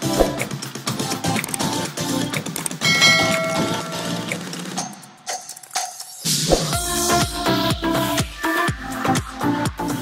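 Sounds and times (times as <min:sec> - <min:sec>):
bell-like chime: 0:02.8 - 0:04.5.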